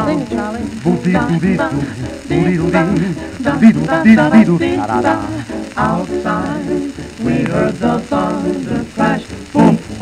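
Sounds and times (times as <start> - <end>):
record surface hiss and crackle: 0.0 - 10.0.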